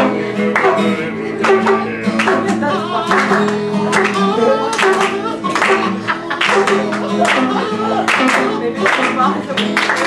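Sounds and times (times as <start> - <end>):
man singing: 0.0 - 9.8
acoustic guitar strumming: 0.0 - 10.0.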